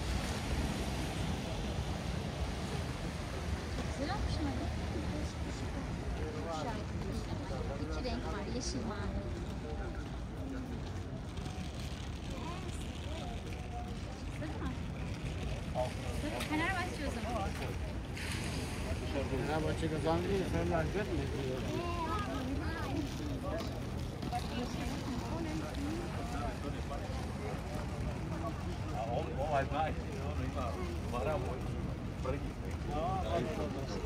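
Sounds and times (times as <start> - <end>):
steady low rumble: 0.0 - 7.6.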